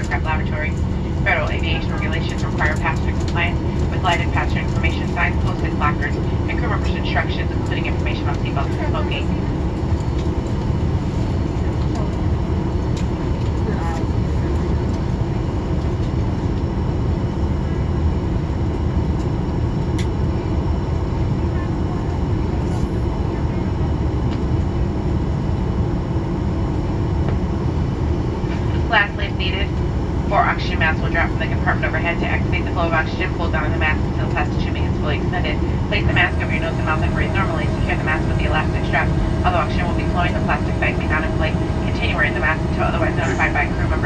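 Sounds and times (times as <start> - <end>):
public address voice: 0.0 - 9.4, 28.7 - 44.0
aircraft cabin engine rumble: 0.0 - 44.0.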